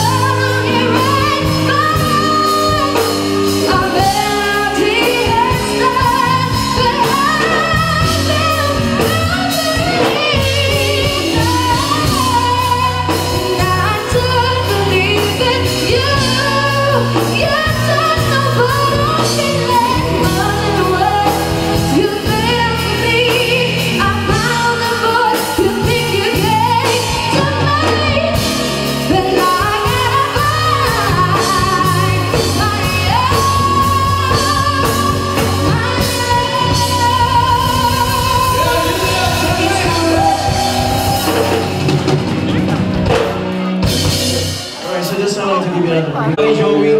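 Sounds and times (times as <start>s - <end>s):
woman singing into a microphone: 0.0s - 41.9s
keyboard accompaniment: 0.0s - 46.9s.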